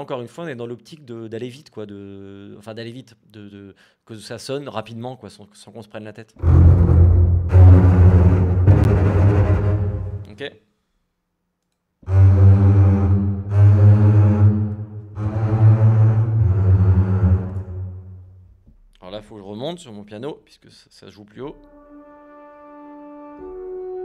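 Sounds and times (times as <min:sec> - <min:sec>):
bowed double basses low notes: 0:06.4 - 0:10.3, 0:12.0 - 0:18.4.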